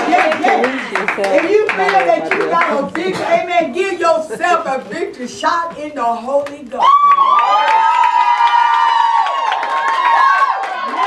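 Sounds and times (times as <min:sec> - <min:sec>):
hand claps: 0:00.0 - 0:03.4, 0:07.2 - 0:11.0.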